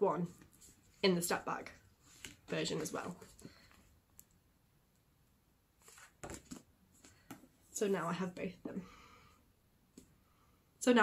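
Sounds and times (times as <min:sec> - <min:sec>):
paperback book handling: 0:02.0 - 0:03.8, 0:05.8 - 0:07.5.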